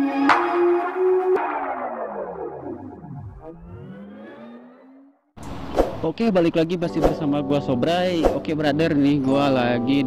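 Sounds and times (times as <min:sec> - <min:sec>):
synth pitch sweep: 0:00.0 - 0:05.7
synthesized sting hit: 0:00.3 - 0:05.2.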